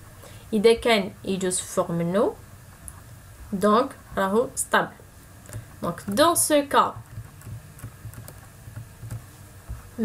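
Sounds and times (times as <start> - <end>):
low steady hum: 0.0 - 10.0
light computer clicking: 7.0 - 9.3.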